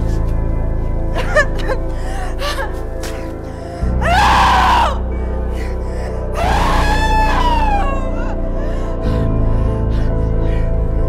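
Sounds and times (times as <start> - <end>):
dark dramatic music drone: 0.0 - 11.0
woman screaming: 4.0 - 5.0, 6.4 - 8.3.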